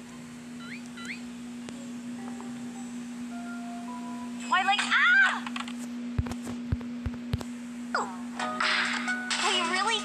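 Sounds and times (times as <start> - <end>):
steady low hum: 0.0 - 10.0
light chiming music: 1.8 - 4.6.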